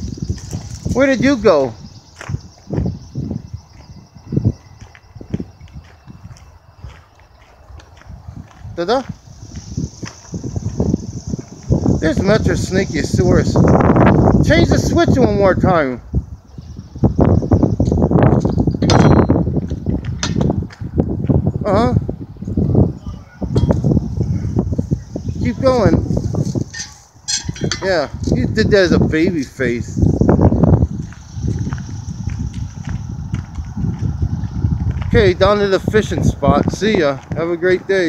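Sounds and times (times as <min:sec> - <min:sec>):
footsteps crunching on gravel: 0:00.0 - 0:12.5, 0:30.1 - 0:37.8
wind rumbling on microphone: 0:00.0 - 0:38.0.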